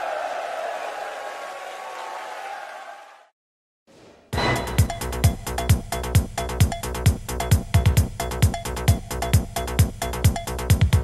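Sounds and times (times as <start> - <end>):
audience cheering and applauding: 0.0 - 3.3.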